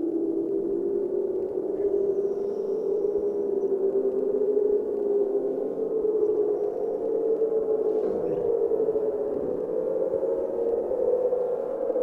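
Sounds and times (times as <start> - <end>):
ambient drone of held tones: 0.0 - 12.0.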